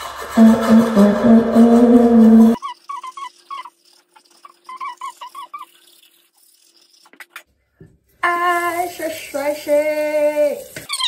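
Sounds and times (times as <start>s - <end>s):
toothbrush scrubbing teeth: 0.0s - 7.6s, 8.2s - 11.0s.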